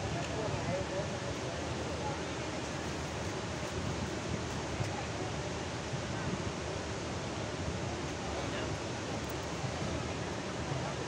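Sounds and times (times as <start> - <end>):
water rushing through dam spillway: 0.0 - 11.0.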